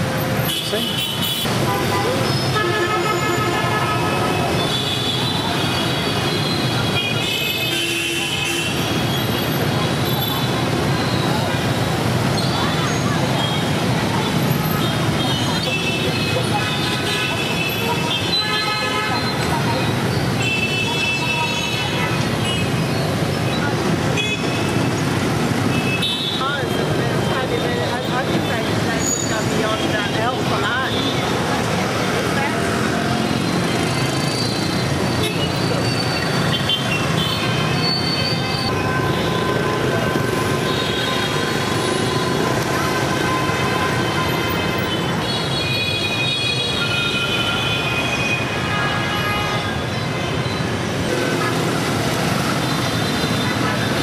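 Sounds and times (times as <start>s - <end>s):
street traffic: 0.0s - 54.0s.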